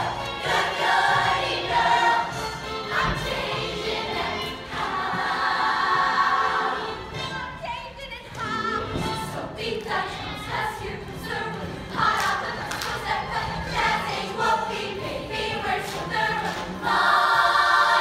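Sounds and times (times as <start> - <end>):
choir singing in unison: 0.0 - 7.2, 8.4 - 18.0.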